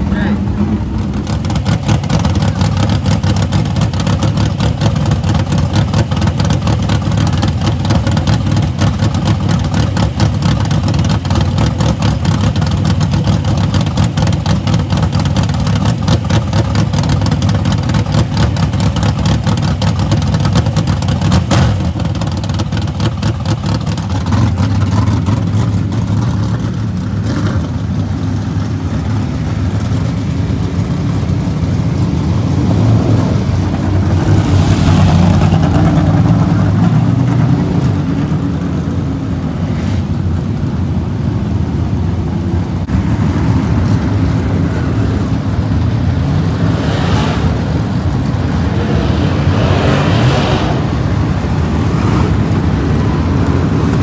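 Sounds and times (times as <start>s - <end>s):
race car engine idling: 0.0s - 46.6s
race cars running on track: 0.0s - 54.0s.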